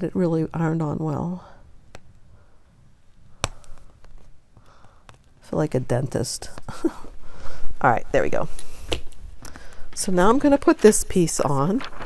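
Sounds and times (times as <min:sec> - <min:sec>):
faint handling sounds: 0:03.0 - 0:05.5, 0:08.4 - 0:12.0.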